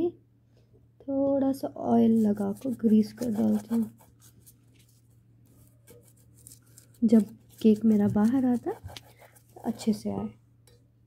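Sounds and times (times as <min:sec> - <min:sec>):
faint soft small sounds: 0:00.4 - 0:11.0.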